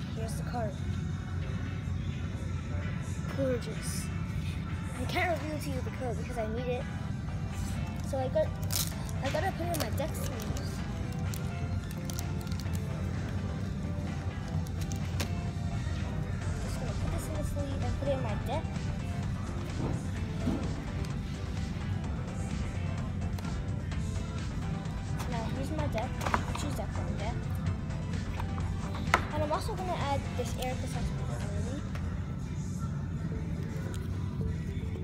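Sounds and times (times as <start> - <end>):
background music: 0.0 - 35.0.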